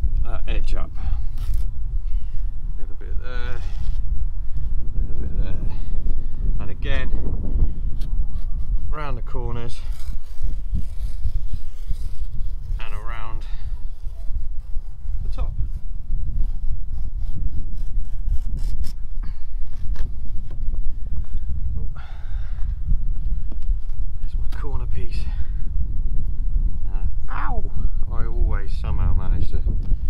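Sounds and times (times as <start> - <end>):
wind rumble on microphone: 0.0 - 30.0.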